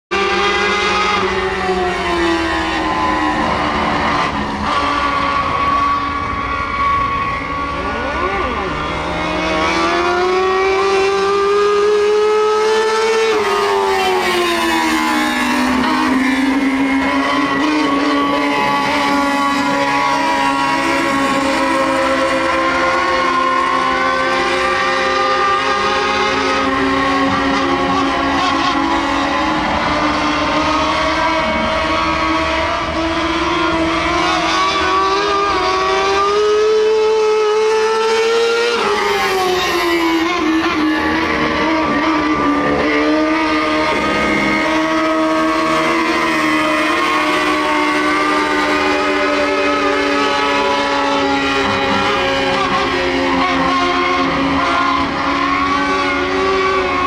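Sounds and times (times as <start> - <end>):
race car engine running hard: 0.2 - 57.0.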